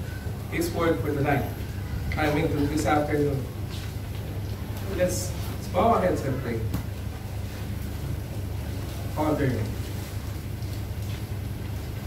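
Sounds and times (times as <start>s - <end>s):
air conditioning humming: 0.0s - 12.0s.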